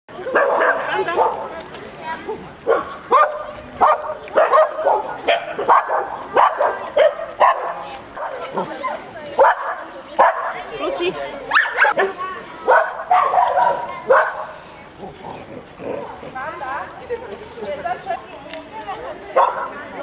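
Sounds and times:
people talking: 0.1 - 20.0
dog barking sharply: 2.7 - 7.8, 12.7 - 14.4.

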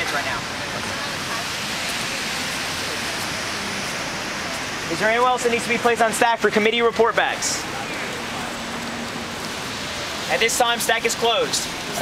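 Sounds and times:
faint voices murmuring: 0.0 - 12.0
outdoor background hiss: 0.0 - 12.0.

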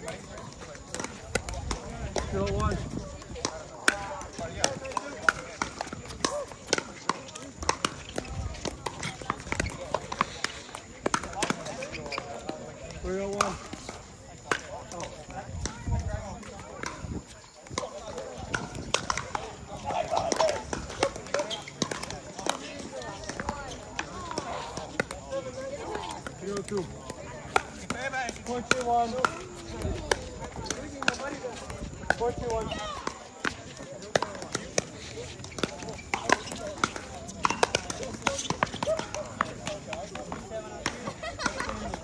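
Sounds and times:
paddles hitting plastic ball: 0.0 - 15.8, 16.4 - 42.0
ball bouncing on hard court: 3.4 - 12.6, 26.0 - 42.0.

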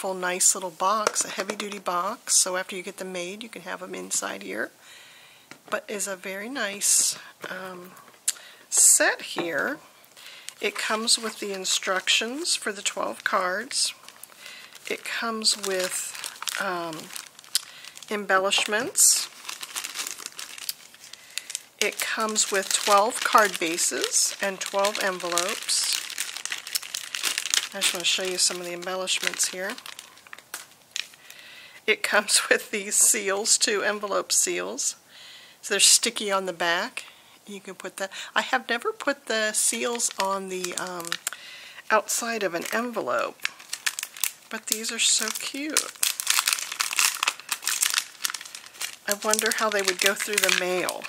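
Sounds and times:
woman speaking: 0.0 - 4.8, 5.7 - 8.0, 8.7 - 9.8, 10.6 - 14.0, 14.9 - 17.2, 18.1 - 19.4, 21.8 - 26.1, 27.7 - 29.9, 31.9 - 35.0, 35.7 - 41.3, 41.9 - 43.4, 44.5 - 46.0, 49.0 - 51.0
plastic bag crinkling: 0.3 - 2.8, 8.1 - 31.4, 39.0 - 41.4, 42.0 - 51.0.

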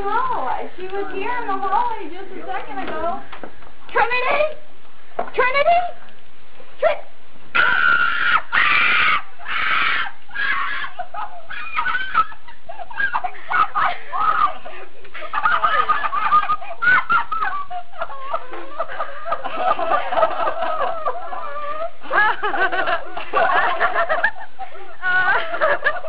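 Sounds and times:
high-pitched screaming: 7.6 - 12.3.

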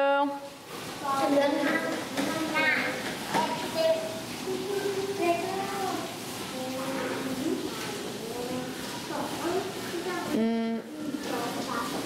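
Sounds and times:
young children chattering: 1.0 - 12.0.

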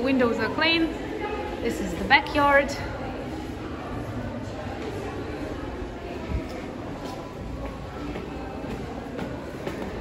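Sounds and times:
footsteps on stone stairs: 7.0 - 10.0.

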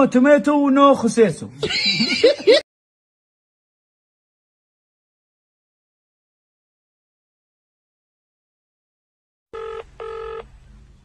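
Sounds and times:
telephone ringback tone: 9.6 - 10.5
faint low hum: 9.6 - 11.0.

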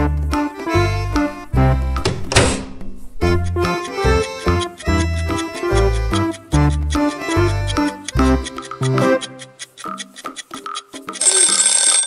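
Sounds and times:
light music with plucked notes: 3.2 - 11.2.

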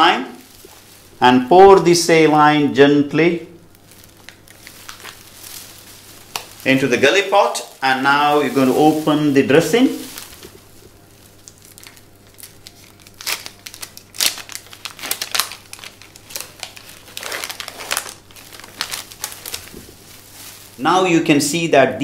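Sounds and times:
wrapper crinkling and crackling: 0.3 - 2.5, 3.5 - 21.6.

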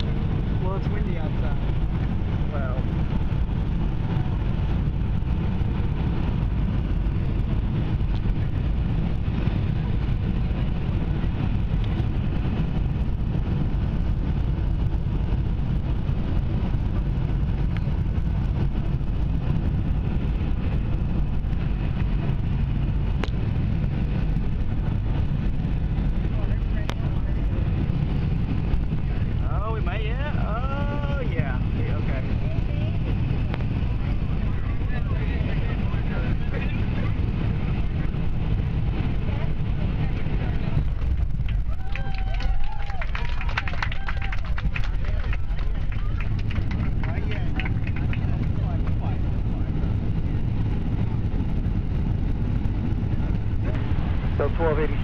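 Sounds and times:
airliner cabin engine rumble: 0.0 - 55.0.

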